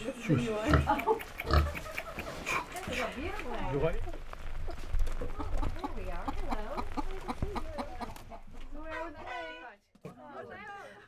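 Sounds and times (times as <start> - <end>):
chickens clucking: 0.0 - 9.4
roosters calling: 0.0 - 9.5.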